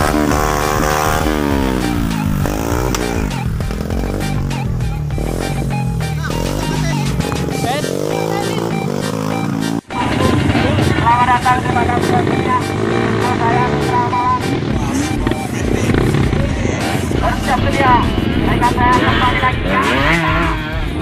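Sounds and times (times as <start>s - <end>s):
dirt bike engines revving: 0.0s - 21.0s
music with singing voice: 0.0s - 21.0s.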